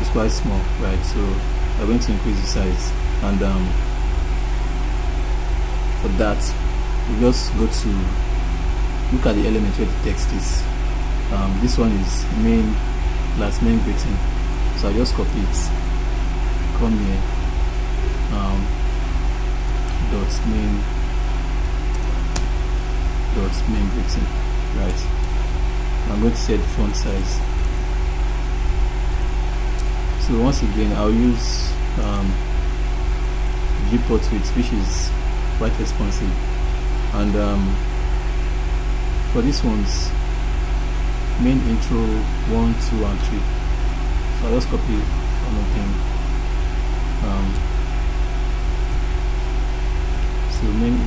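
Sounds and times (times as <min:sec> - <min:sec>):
background hiss: 0:00.0 - 0:51.0
electrical mains hum: 0:00.0 - 0:51.0.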